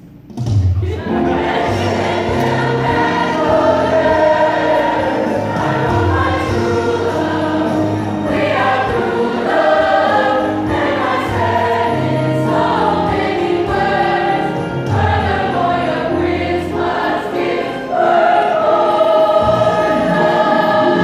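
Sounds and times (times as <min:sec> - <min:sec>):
choir singing in parts: 0:00.8 - 0:21.0.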